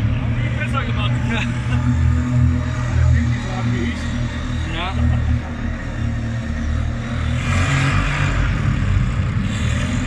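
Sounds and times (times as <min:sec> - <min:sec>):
quad bike engine rumbling: 0:00.0 - 0:10.0.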